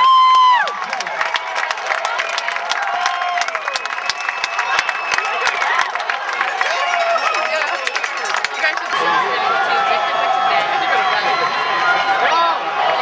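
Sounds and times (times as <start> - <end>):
crowd cheering and shouting: 0.0 - 13.0
sharp clapping: 0.3 - 9.0.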